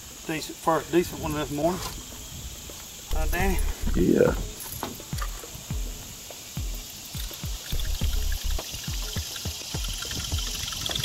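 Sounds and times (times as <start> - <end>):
water splashing and dripping: 4.4 - 11.0.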